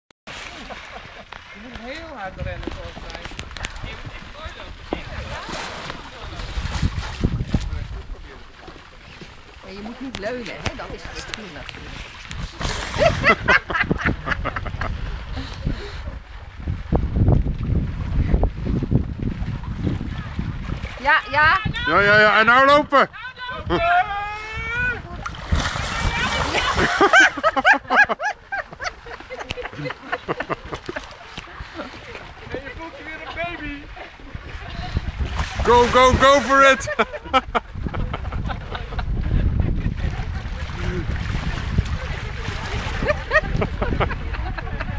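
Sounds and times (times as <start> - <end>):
water splashing: 0.3 - 44.9
wind buffeting microphone: 1.8 - 44.9
voices: 21.0 - 37.4.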